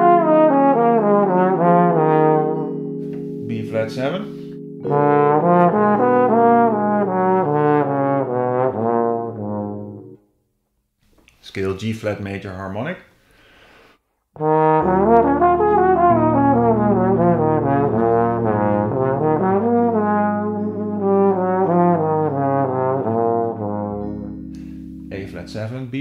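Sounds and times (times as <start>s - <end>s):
sustained low chord tones: 0.0s - 10.2s, 14.4s - 26.0s
trombone jazz run: 0.0s - 10.2s, 14.4s - 24.4s.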